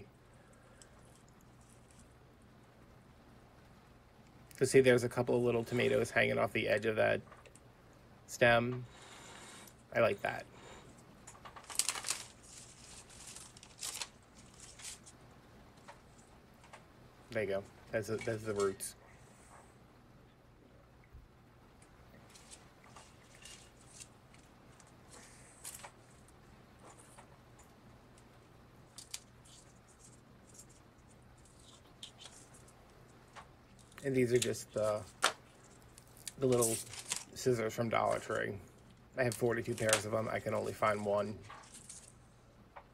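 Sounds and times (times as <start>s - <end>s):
steady low hum: 0.0s - 42.9s
tomato foliage rustling: 11.6s - 15.2s, 17.4s - 18.9s, 22.2s - 27.2s, 28.9s - 38.6s, 39.2s - 42.3s.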